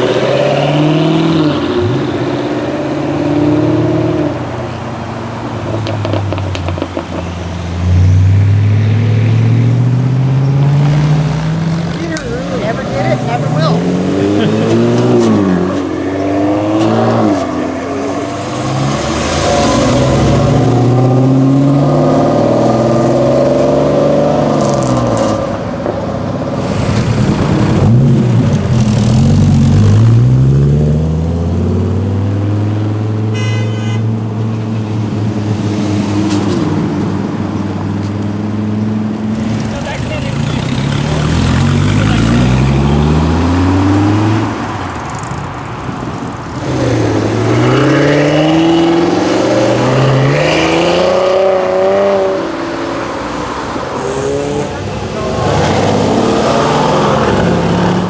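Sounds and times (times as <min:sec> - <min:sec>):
performance cars accelerating: 0:00.0 - 0:33.3, 0:34.2 - 0:58.0.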